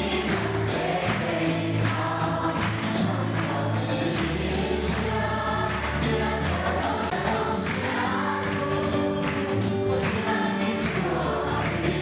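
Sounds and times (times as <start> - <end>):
gospel singing over sound system: 0.0 - 12.0
instrumental accompaniment: 0.0 - 12.0.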